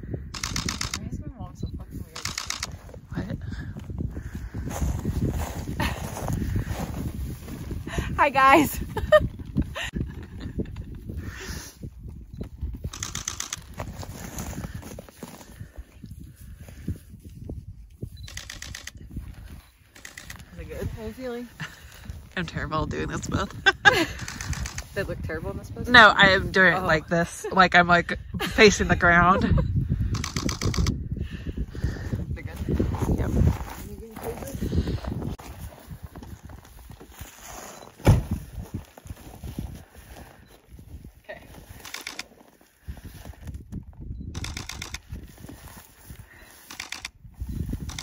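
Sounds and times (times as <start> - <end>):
camera shutter burst: 0.4 - 1.0, 2.2 - 2.8, 12.9 - 13.7
rattle of clicks: 2.2 - 2.8, 12.9 - 13.7, 18.3 - 19.0, 20.0 - 20.5, 24.2 - 24.9, 30.1 - 30.9, 41.8 - 42.3, 44.4 - 45.0, 46.7 - 47.1.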